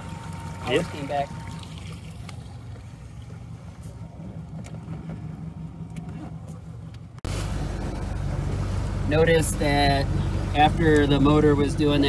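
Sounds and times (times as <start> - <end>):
outboard motor idling: 0.0 - 12.0
steady engine hum: 0.0 - 12.0.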